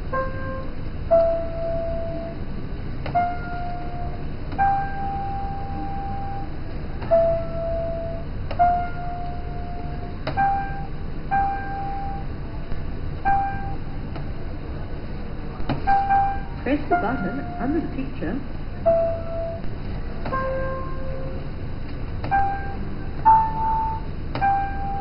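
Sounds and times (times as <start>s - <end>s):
floor piano electronic notes: 0.0s - 25.0s
steady low hum: 0.0s - 25.0s.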